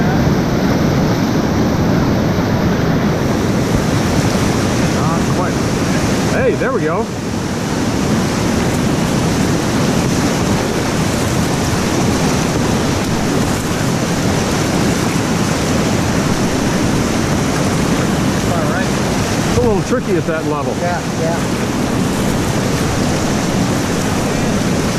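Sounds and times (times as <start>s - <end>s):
whitewater rapid rushing: 0.0s - 24.9s.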